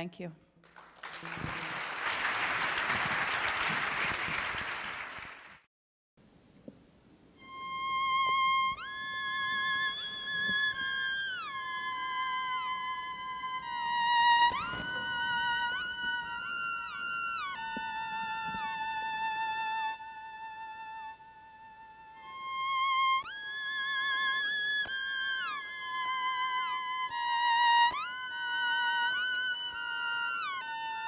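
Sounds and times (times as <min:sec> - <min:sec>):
electric violin: 0:07.4 - 0:31.0.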